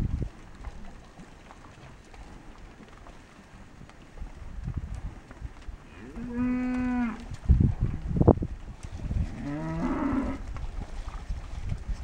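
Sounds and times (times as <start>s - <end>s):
cattle mooing: 5.9s - 7.2s, 9.3s - 10.4s.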